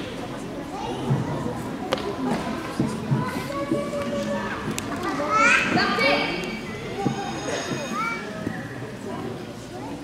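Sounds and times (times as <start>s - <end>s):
children's voices: 0.0s - 10.0s.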